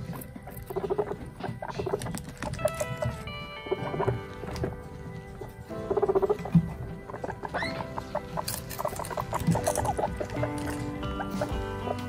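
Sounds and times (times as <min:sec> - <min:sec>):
background music with held notes: 0:00.0 - 0:12.0
guinea pigs chewing a leaf: 0:00.0 - 0:12.0.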